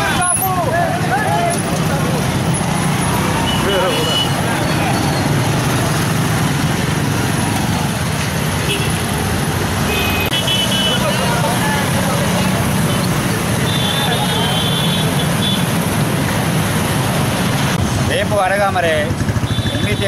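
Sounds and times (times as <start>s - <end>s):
men's voices: 0.0s - 2.6s
motorcycle engines running: 0.0s - 20.0s.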